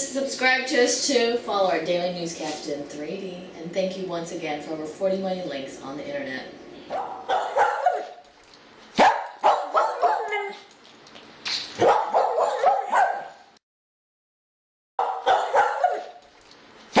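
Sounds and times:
dog barking and yipping: 0:06.9 - 0:08.3, 0:08.9 - 0:10.7, 0:11.6 - 0:13.5, 0:15.0 - 0:16.2.

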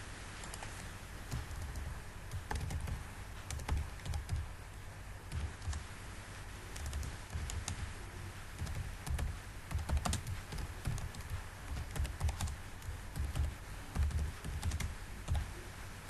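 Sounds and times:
keyboard typing: 0:00.4 - 0:04.5, 0:05.3 - 0:05.9, 0:06.7 - 0:07.9, 0:08.6 - 0:15.6.

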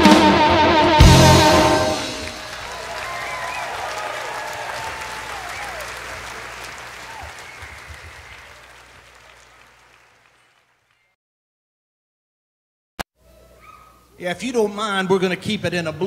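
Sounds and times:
audience applauding: 0:01.5 - 0:11.1
whistles from audience: 0:02.5 - 0:11.1.

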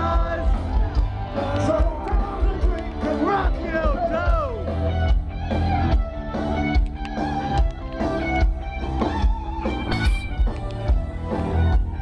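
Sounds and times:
electric guitar: 0:00.0 - 0:12.0
live rock band: 0:00.0 - 0:12.0
steady drum beat: 0:00.0 - 0:12.0.

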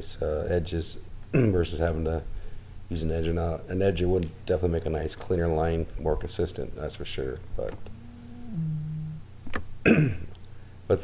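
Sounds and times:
throat clearing: 0:01.4 - 0:01.6, 0:09.8 - 0:10.3
man humming in hesitation: 0:07.6 - 0:09.3.

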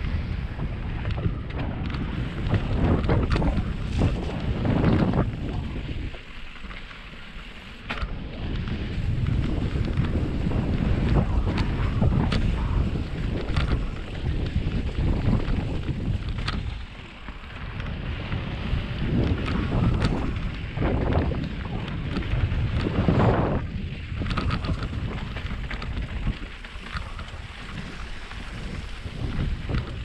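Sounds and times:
bike clicks and rattles: 0:00.0 - 0:30.0
bike tyres rolling over dirt: 0:00.0 - 0:30.0
wind buffeting microphone: 0:00.0 - 0:30.0.

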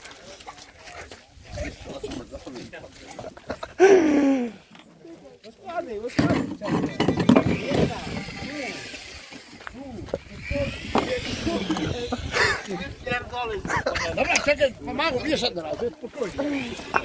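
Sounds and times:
people talking: 0:00.0 - 0:17.0.

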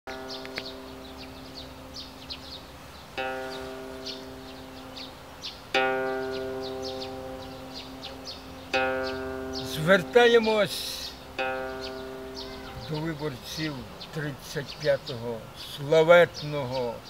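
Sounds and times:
plucked string chords: 0:00.1 - 0:14.8
birds chirping: 0:00.1 - 0:17.0.

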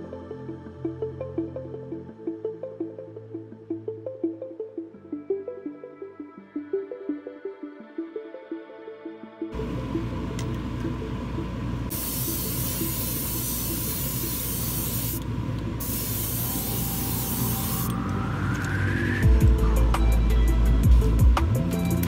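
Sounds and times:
spray paint hissing: 0:11.9 - 0:15.2, 0:15.8 - 0:18.0
rising whine: 0:16.6 - 0:20.6.

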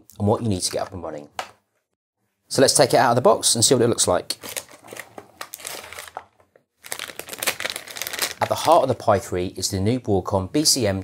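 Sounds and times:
plastic bag crinkling: 0:04.4 - 0:09.0.

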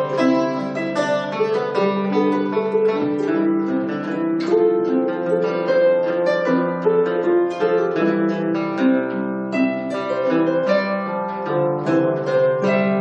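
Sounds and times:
harp and bouzouki playing: 0:00.0 - 0:13.0.

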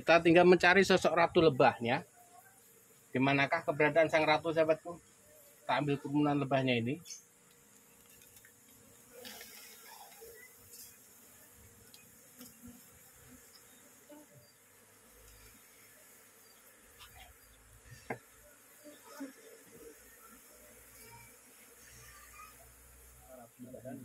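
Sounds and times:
bees buzzing: 0:00.0 - 0:24.0.

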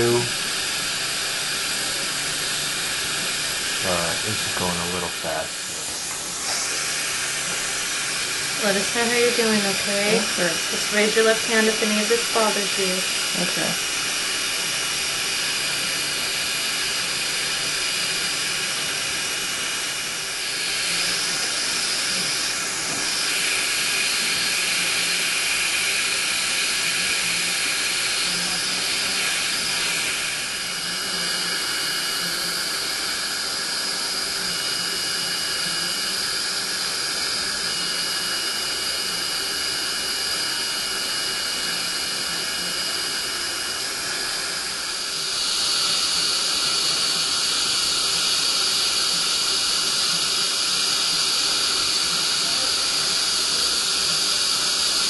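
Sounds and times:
dental suction hissing: 0:00.0 - 0:55.0.

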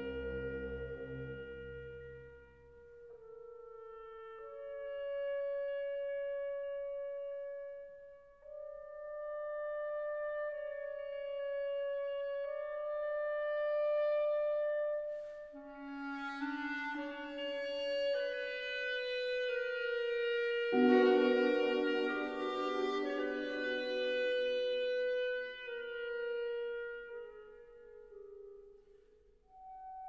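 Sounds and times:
solo wind instrument melody: 0:00.0 - 0:30.0
orchestral instruments: 0:20.6 - 0:25.4.

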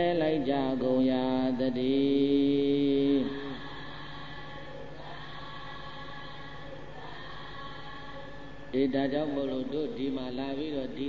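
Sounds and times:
man chanting in held notes: 0:00.0 - 0:04.2, 0:08.7 - 0:11.0.

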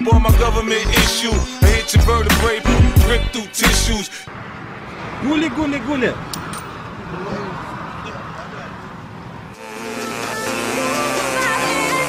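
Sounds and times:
outdoor background noise: 0:04.3 - 0:09.7.

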